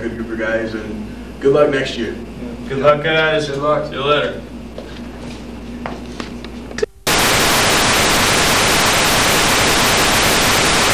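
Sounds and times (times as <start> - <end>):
loud static hiss: 7.0 - 10.9.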